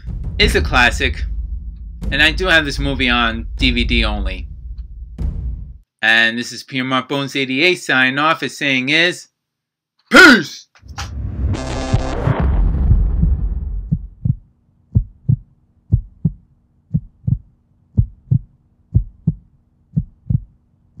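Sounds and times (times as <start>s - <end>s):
heartbeat thumps: 0.0s - 5.8s, 11.2s - 20.6s
loud rumbling burst: 0.0s - 5.8s, 10.8s - 14.3s.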